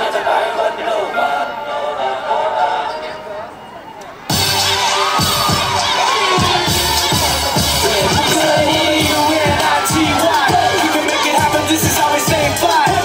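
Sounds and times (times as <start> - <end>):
children shouting: 3.2 - 13.0
audience cheering: 3.8 - 13.0
loud dance music: 4.2 - 13.0.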